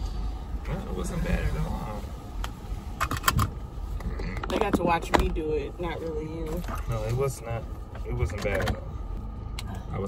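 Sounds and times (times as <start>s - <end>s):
car engine hum: 0.0s - 10.0s.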